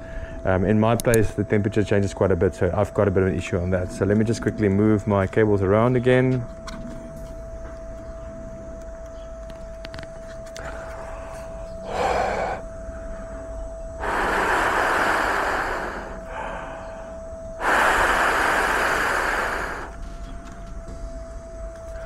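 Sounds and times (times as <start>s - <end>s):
person blowing breath: 10.6s - 12.7s, 14.0s - 20.1s.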